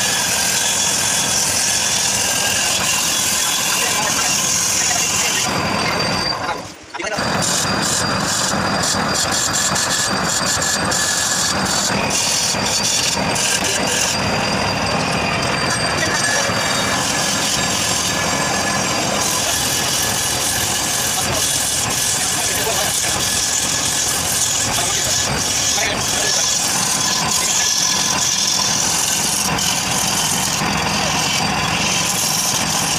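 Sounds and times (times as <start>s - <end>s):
chisel scraping spinning wood: 0.0s - 32.9s
wood lathe running: 0.0s - 32.9s.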